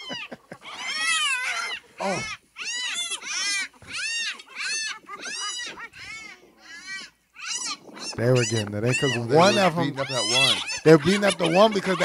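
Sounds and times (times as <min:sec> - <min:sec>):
hyenas calling: 0:00.0 - 0:12.0.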